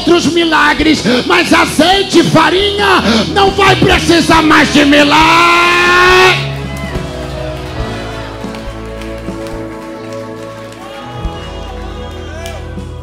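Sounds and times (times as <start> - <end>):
man shouting: 0.0 - 6.5
sustained keyboard chords: 1.8 - 13.0.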